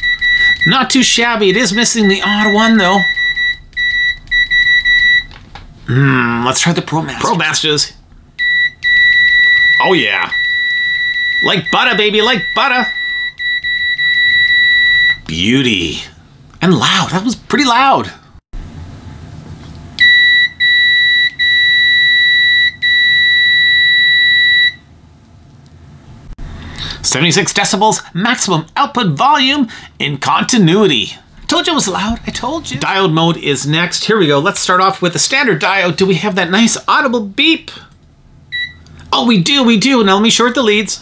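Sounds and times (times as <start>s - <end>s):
high-pitched meter beep tone: 0.0s - 5.3s, 8.4s - 15.2s, 20.0s - 24.8s, 38.5s - 38.8s
high-pitched continuity beep: 8.4s - 15.2s.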